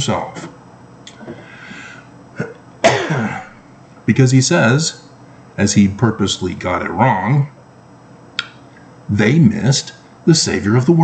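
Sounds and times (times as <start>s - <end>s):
man coughing: 2.3s - 3.6s.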